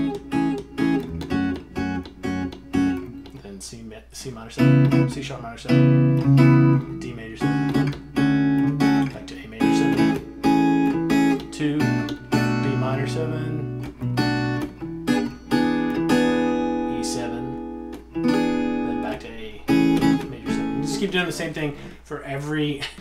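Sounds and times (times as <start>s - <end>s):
electric guitar strumming chords: 0.0s - 3.4s, 4.5s - 22.0s.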